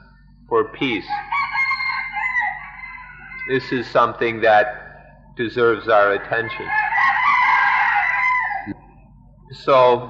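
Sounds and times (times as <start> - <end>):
rooster crowing: 0.8 - 4.3, 5.9 - 8.8.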